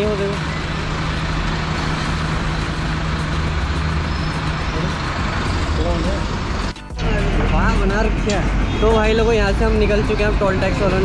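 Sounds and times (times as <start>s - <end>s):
road and traffic noise: 0.0s - 11.0s
vehicle engine idling: 0.0s - 11.0s.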